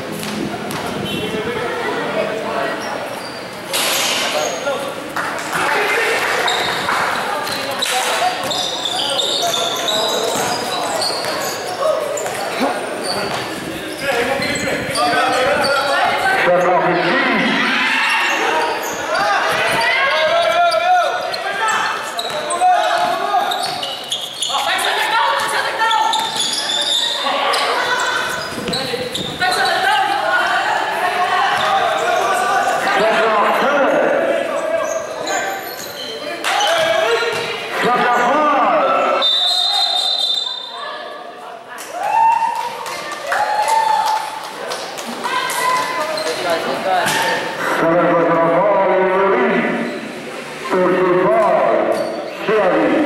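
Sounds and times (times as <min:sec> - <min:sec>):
people shouting in echoing hall: 0:07.2 - 0:13.0, 0:15.0 - 0:23.8
basketball bouncing on court: 0:10.3 - 0:11.5, 0:36.7 - 0:37.6.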